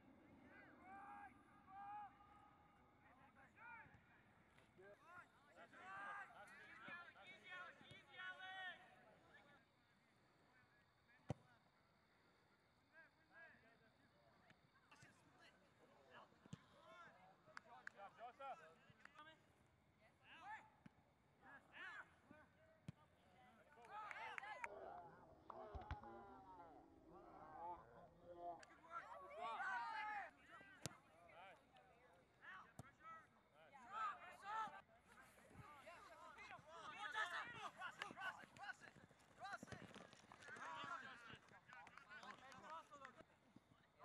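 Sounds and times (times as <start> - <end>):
faint shouts of players: 0.4 - 9.1, 20.2 - 31.6, 32.4 - 43.2.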